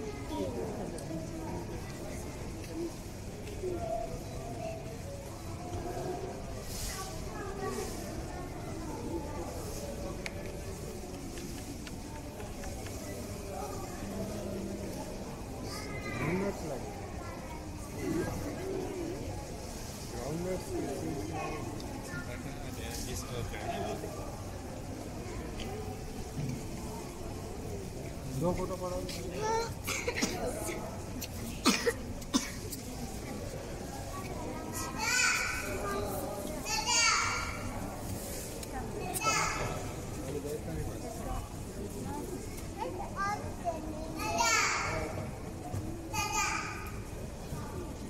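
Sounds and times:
children's voices: 0.0 - 20.1, 20.9 - 22.4, 23.9 - 28.2, 29.1 - 40.2, 41.1 - 48.0
background chatter of visitors: 0.0 - 48.0
crowd noise: 0.0 - 48.0.

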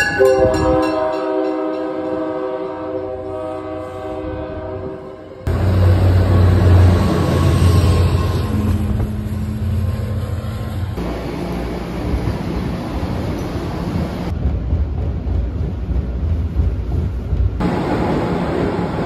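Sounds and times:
diesel locomotive engine rumble: 0.0 - 19.0
train horn chord: 0.2 - 10.7.

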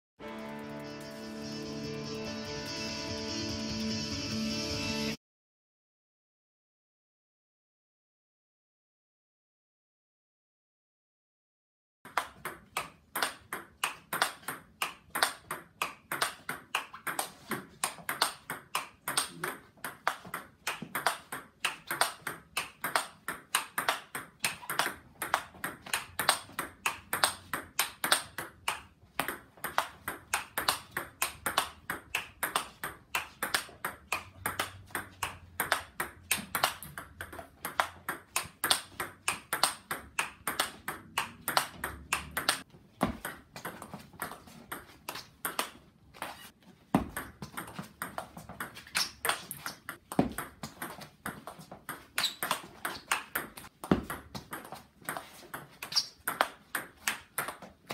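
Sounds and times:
table tennis ball knocks: 12.1 - 44.9.

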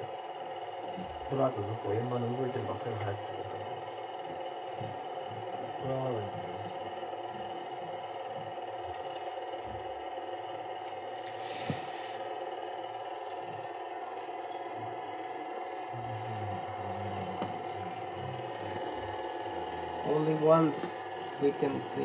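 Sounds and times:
steady hum with hiss: 0.0 - 22.0
faint held tones: 1.0 - 9.0, 13.2 - 21.4.

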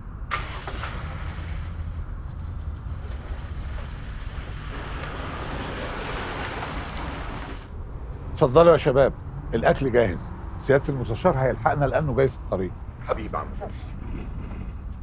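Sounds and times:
car engine rumble: 0.0 - 15.0
tyre noise: 0.3 - 7.8.

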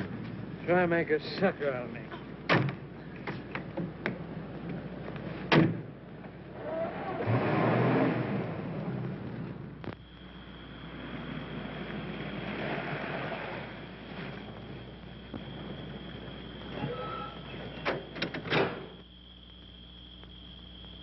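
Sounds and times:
car engine driving off: 6.1 - 19.0
steady high whine: 8.1 - 21.0.

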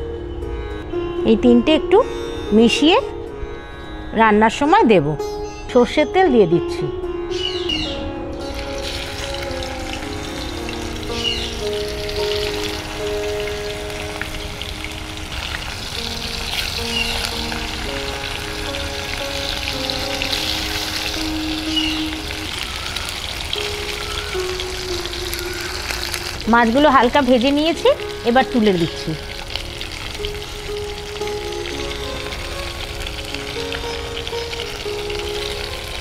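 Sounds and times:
soft instrumental music: 0.0 - 36.0
fish sizzling in hot oil: 8.4 - 36.0.

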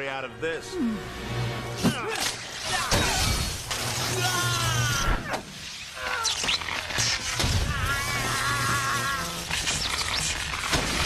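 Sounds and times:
dramatic film score: 0.0 - 11.0
electrical crackling and sparking: 2.1 - 11.0
sharp electric cracks: 2.2 - 11.0.

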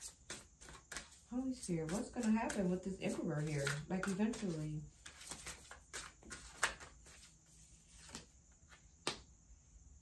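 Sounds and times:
cards tapping and flicking: 3.6 - 7.2.

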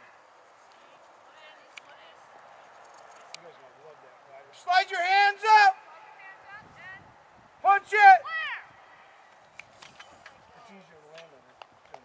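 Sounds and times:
person shouting: 4.7 - 5.9, 7.6 - 8.8.

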